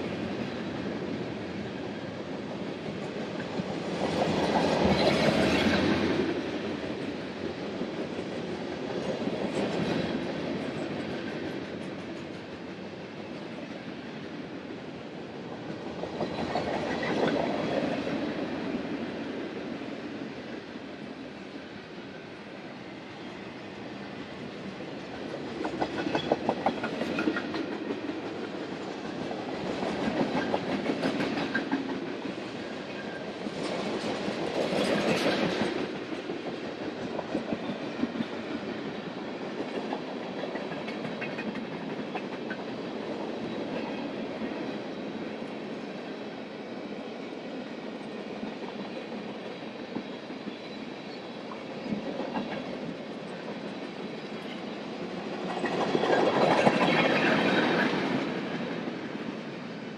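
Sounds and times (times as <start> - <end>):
wheels clickety-clack: 25.1 - 38.7, 39.4 - 44.0, 51.9 - 59.2.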